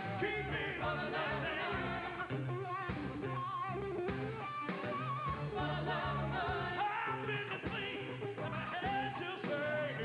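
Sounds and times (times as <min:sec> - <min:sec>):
man singing: 0:00.0 - 0:02.8, 0:06.7 - 0:10.0
live band playing: 0:00.0 - 0:10.0.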